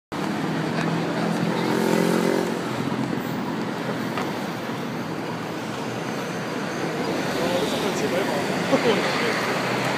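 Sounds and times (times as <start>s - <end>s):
cars driving past: 0.2s - 9.9s.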